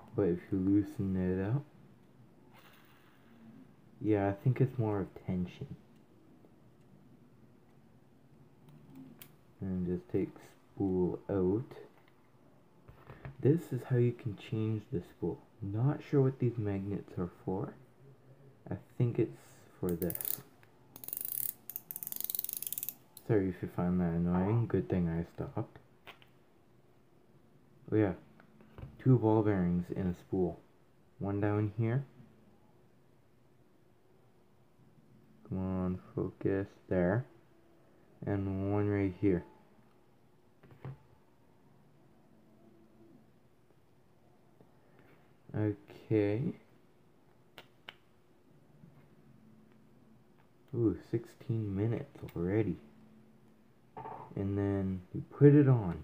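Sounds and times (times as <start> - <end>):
rapid ratchet clicks: 20.0 - 20.4, 21.0 - 23.0.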